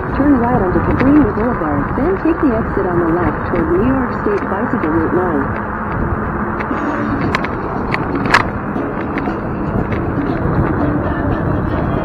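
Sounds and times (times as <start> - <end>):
wind and road noise: 0.0 - 12.0
scooter rattles and knocks: 0.7 - 1.4, 5.2 - 12.0.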